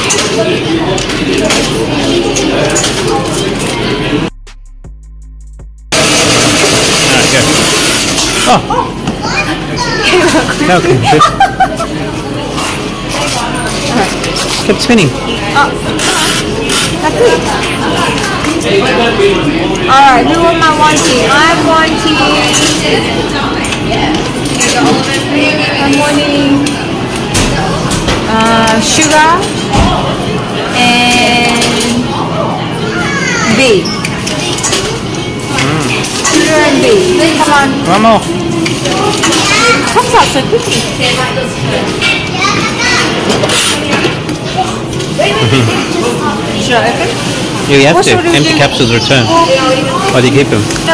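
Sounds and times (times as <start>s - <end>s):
coins clinking into coin slot: 34.0s - 41.4s.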